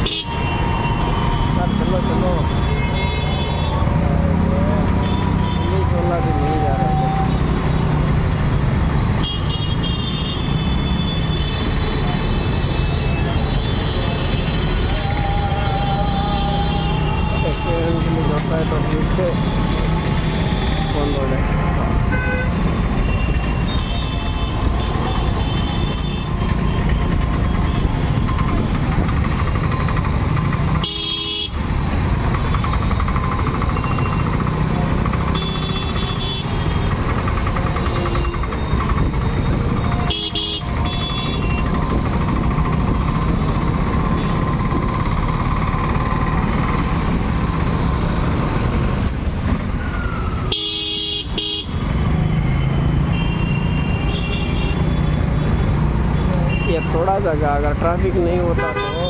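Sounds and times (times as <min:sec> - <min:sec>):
motorcycle engines running: 0:22.6 - 0:50.0.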